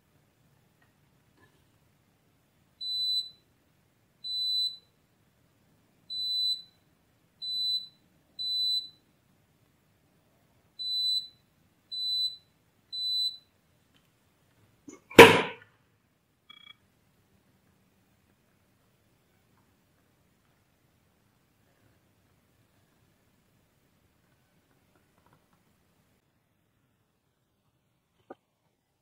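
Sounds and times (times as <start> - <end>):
loud knock: 15.1 - 15.6
multimeter short high beeps: 16.5 - 16.8.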